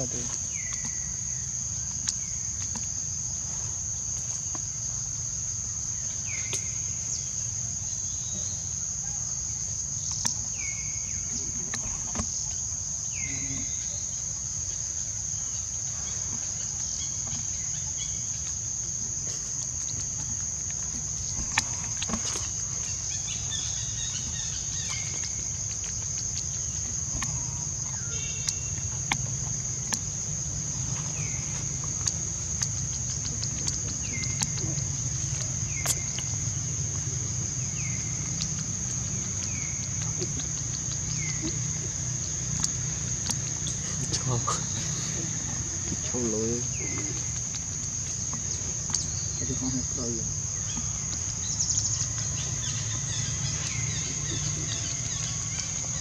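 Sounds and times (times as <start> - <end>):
insects droning: 0.0 - 56.0.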